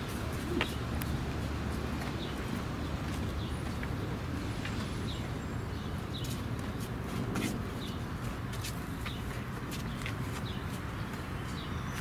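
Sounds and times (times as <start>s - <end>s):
crackling scuffs: 0.0s - 12.0s.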